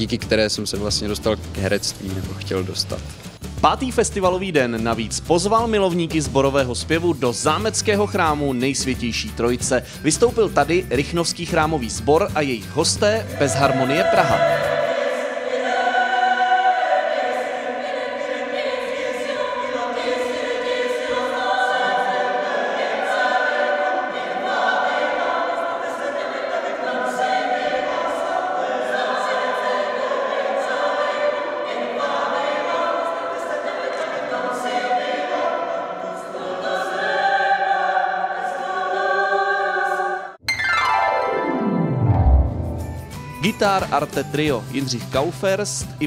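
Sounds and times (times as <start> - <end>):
mixed choir singing: 13.0 - 40.4.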